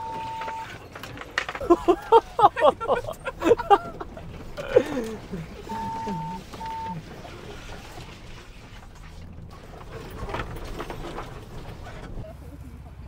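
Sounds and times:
low engine rumble and cabin noise: 0.0 - 13.0
clicks and rustles: 0.2 - 5.7, 6.4 - 12.2.

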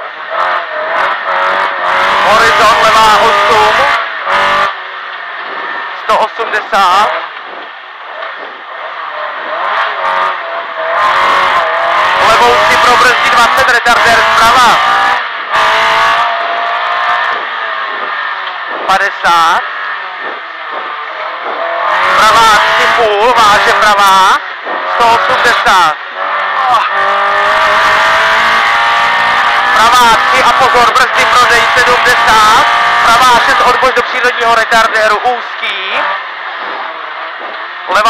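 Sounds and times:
rally car engine running: 0.0 - 38.0.

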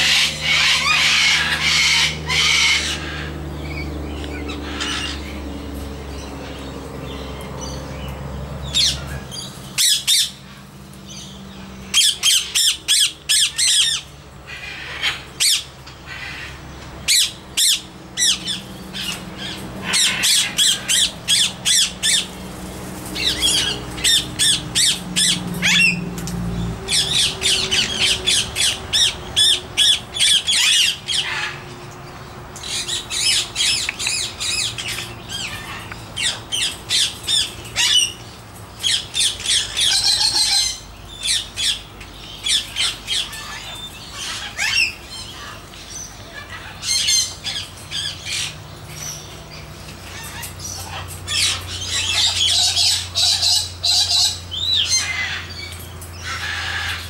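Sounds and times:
parrots squawking: 0.0 - 5.4, 8.6 - 22.4, 23.1 - 31.8, 32.6 - 57.0.

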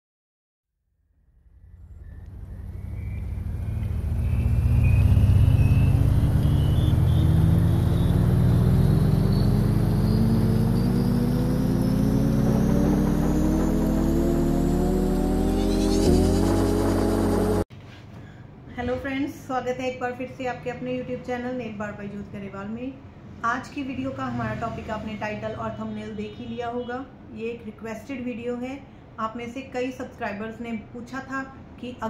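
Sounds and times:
synth low rumble: 1.2 - 17.7
synth tones rising in pitch: 1.5 - 17.7
synth hit: 10.2 - 17.6.

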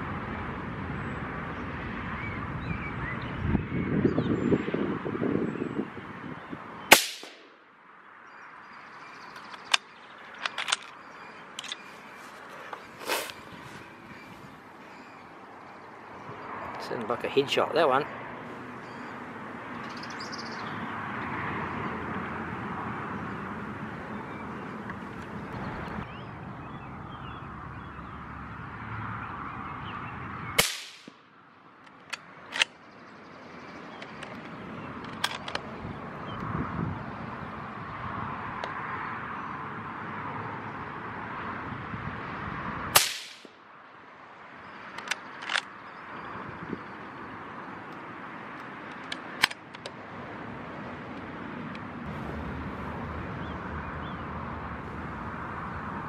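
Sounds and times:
outdoor background noise: 0.0 - 56.0
rifle shots: 6.9 - 7.6, 30.6 - 31.2, 43.0 - 43.5
rifle bolt clicks: 48.6 - 50.0.

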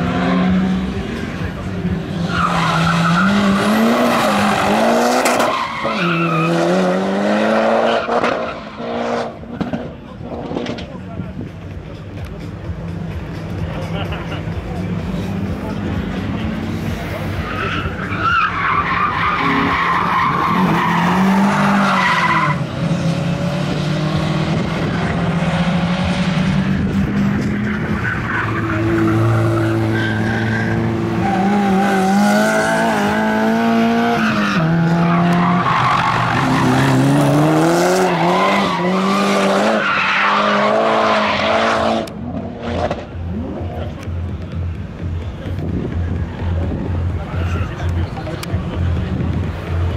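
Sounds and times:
race car engines revving: 0.0 - 49.9.

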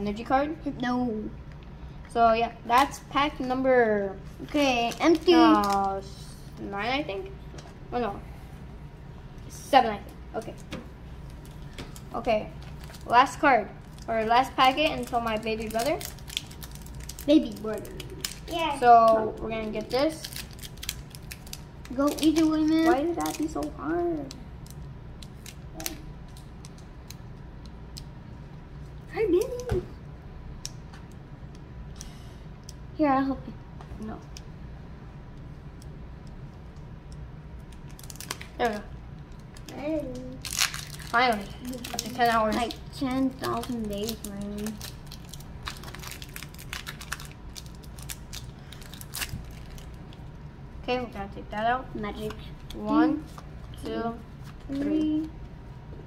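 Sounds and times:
foil wrapper crinkling: 4.4 - 5.9, 11.2 - 27.2, 37.6 - 50.3.

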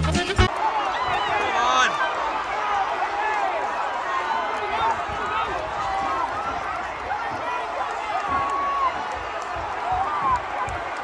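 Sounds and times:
crowd murmur: 0.5 - 11.0.

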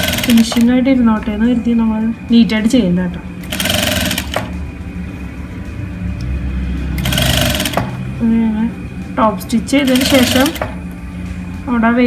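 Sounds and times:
sewing machine running: 0.0 - 0.7, 3.4 - 4.6, 7.0 - 8.0, 9.8 - 10.8.

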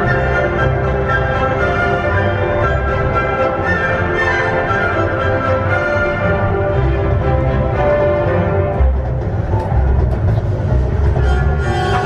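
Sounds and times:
orchestral music: 0.0 - 12.0
train rumbling: 6.2 - 12.0.

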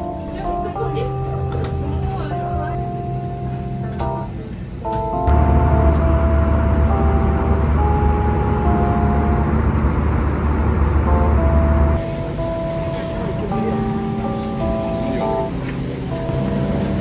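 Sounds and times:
soft background music: 0.0 - 10.0, 11.1 - 17.0
airliner cabin rumble: 0.0 - 17.0.

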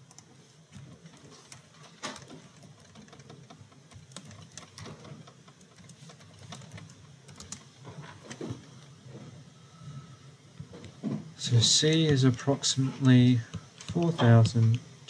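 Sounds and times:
faint keyboard typing: 0.0 - 9.0, 11.6 - 14.9.

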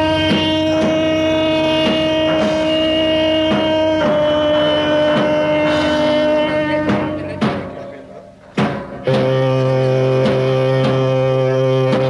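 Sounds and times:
drum hits: 0.0 - 12.0.

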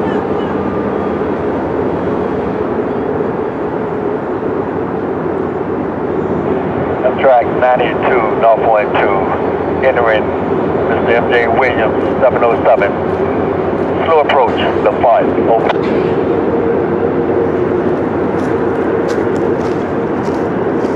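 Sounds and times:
voice on two-way radio: 7.0 - 13.0, 13.9 - 15.8.

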